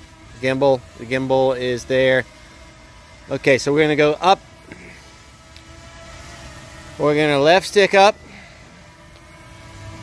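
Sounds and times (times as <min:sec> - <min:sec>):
drone propellers humming: 0:00.0 - 0:10.0
low hum: 0:00.0 - 0:10.0.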